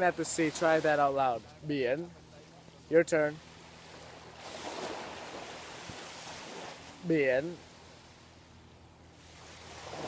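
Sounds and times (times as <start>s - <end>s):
small waves washing on beach: 0.0s - 10.0s.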